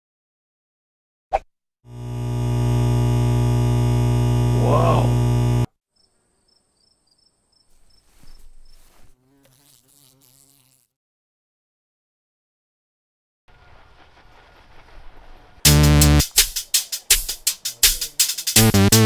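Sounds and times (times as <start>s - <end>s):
low electric buzz: 1.9s - 5.7s.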